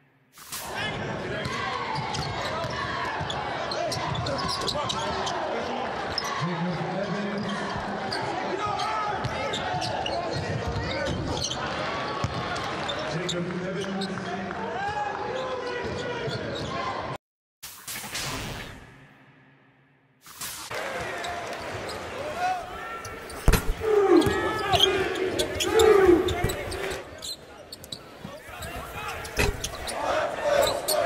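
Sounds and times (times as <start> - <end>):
arena crowd chatter: 0.6 - 17.2, 20.7 - 31.0.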